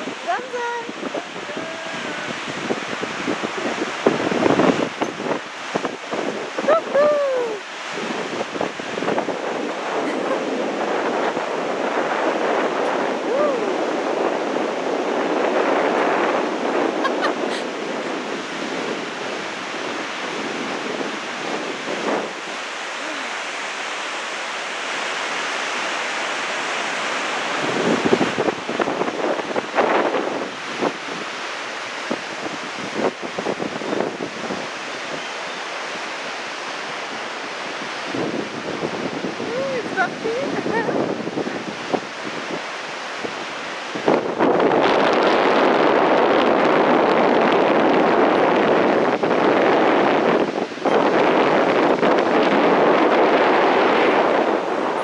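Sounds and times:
whitewater river rushing: 0.0 - 55.0
wind buffeting microphone: 0.0 - 55.0.

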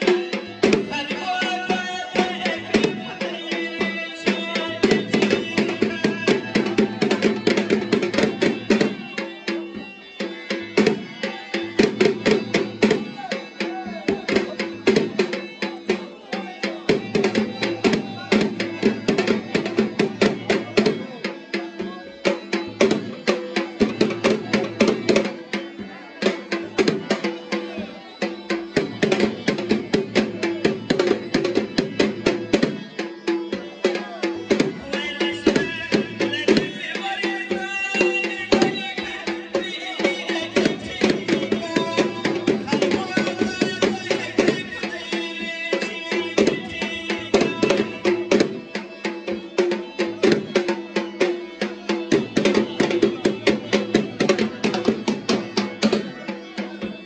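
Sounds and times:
drum beaten in fast rhythm: 0.0 - 57.0.

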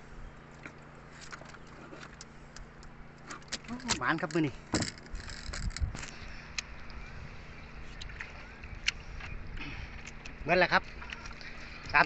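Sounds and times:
boat engine humming: 0.0 - 12.0.

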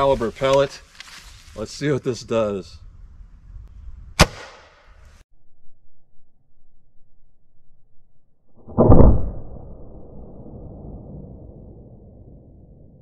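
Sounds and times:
air rifle shot: 4.2 - 4.9, 8.7 - 9.8
low rumble: 5.3 - 13.0.

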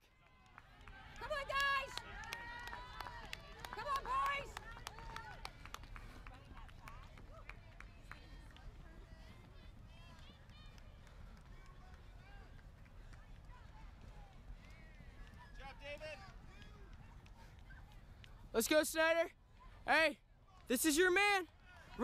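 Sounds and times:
runners' footsteps pattering: 0.1 - 22.0.

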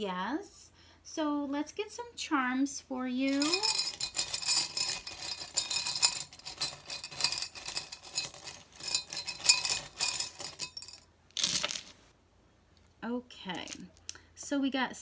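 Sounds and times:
small charms clinking in glass jar: 3.2 - 11.9
handful of charms dropped rattling: 3.3 - 11.9.

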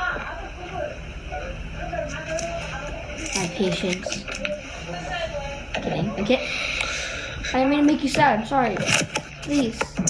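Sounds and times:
faint low talk: 0.0 - 10.0
steady low hum: 0.0 - 10.0.

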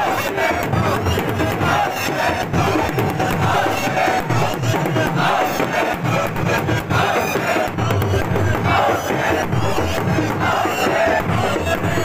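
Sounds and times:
crowd chanting: 0.0 - 12.0
hands striking chests in rhythm: 0.0 - 12.0.

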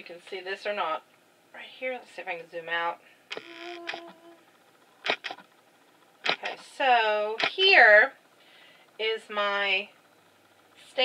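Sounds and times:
camera zoom motor whirring: 3.3 - 7.6
camera clicks: 5.1 - 5.4, 6.2 - 6.6.

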